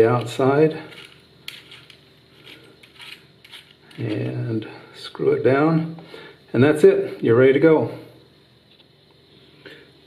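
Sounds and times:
metal ring clicks and scrapes: 0:00.9 - 0:04.4.

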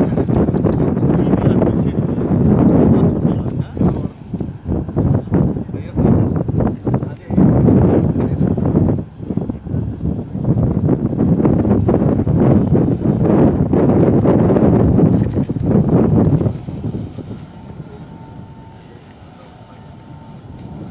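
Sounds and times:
wind buffeting microphone: 0:00.0 - 0:20.9.

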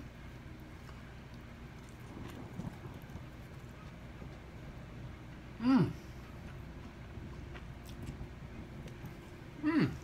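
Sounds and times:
faint chewing: 0:00.5 - 0:10.0.

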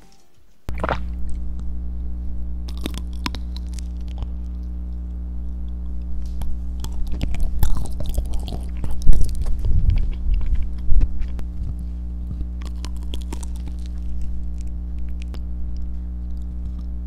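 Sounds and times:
steady low hum: 0:00.0 - 0:17.0
close chewing: 0:00.7 - 0:01.7, 0:02.7 - 0:17.0
wet mouth clicks: 0:00.7 - 0:01.7, 0:02.7 - 0:17.0.

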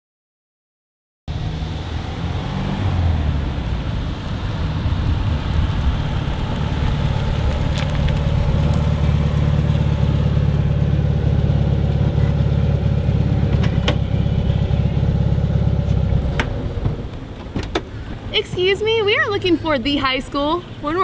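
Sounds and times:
car engine idling: 0:02.9 - 0:21.0
car door clicks: 0:16.3 - 0:18.0.

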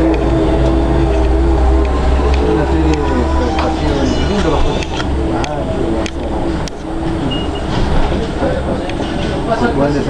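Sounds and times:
bus rumbling: 0:00.0 - 0:10.0
passengers' voices: 0:00.0 - 0:10.0.

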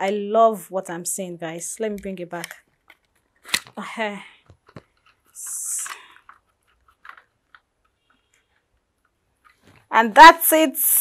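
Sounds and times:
phone holder clicks and handling: 0:02.0 - 0:03.8.

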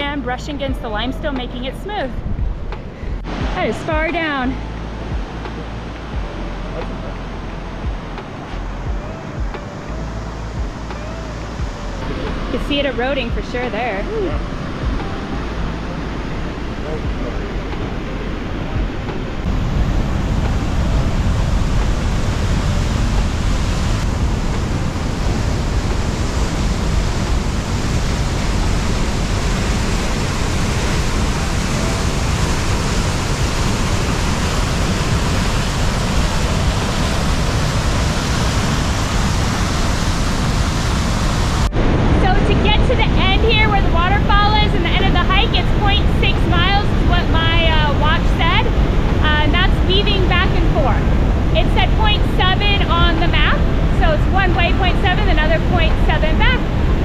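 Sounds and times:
water rushing through canyon: 0:03.2 - 0:57.0.

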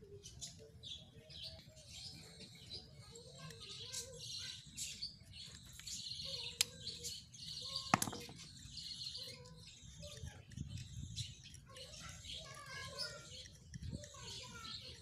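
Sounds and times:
small birds chirping: 0:00.0 - 0:15.0
screwdriver clinking on concrete: 0:07.8 - 0:15.0.

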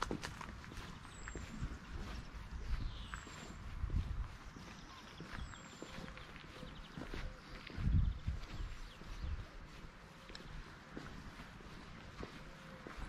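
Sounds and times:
footsteps on gravel: 0:00.0 - 0:13.0.

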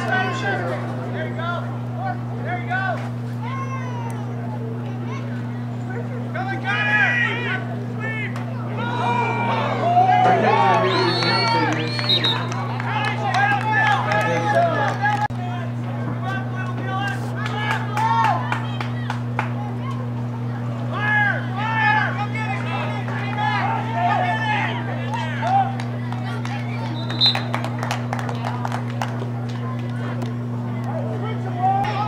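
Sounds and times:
spectators and coaches shouting: 0:00.0 - 0:27.5, 0:30.9 - 0:32.0
steady low hum: 0:00.0 - 0:32.0.

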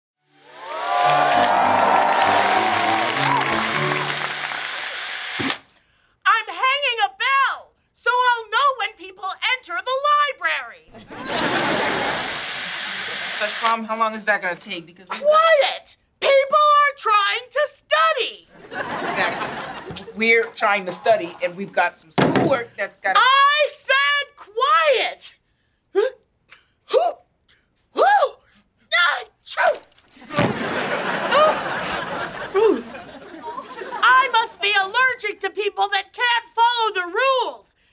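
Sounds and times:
cordless drill whirring: 0:00.2 - 0:05.8, 0:11.2 - 0:13.8
music: 0:01.0 - 0:04.6.

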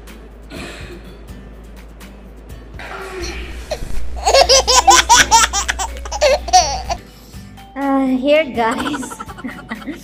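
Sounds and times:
woman laughing loudly: 0:03.6 - 0:07.0, 0:08.7 - 0:10.0.

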